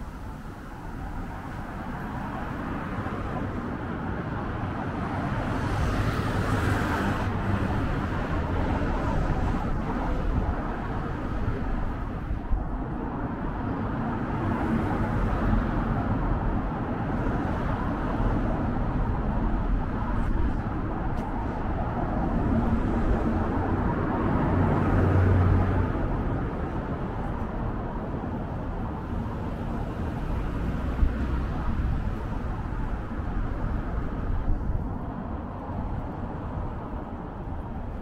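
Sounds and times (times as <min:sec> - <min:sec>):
cars going by: 0:00.0 - 0:38.0.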